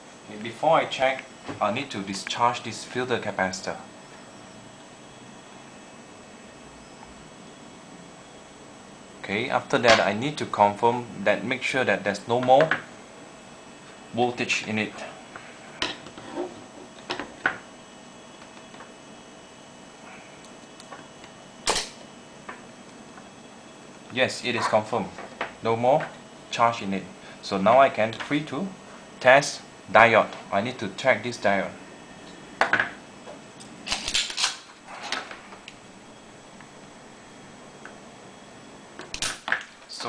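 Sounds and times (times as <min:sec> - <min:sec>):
low steady background noise: 0:00.0 - 0:40.0.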